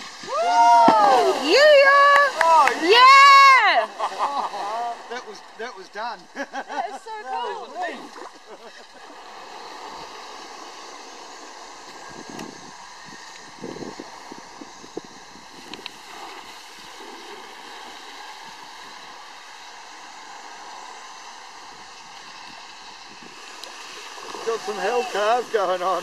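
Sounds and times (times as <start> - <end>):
water noise: 0.0 - 26.0
wind: 0.0 - 26.0.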